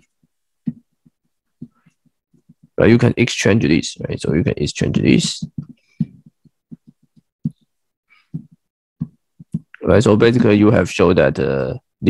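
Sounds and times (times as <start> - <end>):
stylus tapping on drawing tablet: 0.0 - 2.8, 5.2 - 7.7, 8.3 - 9.7.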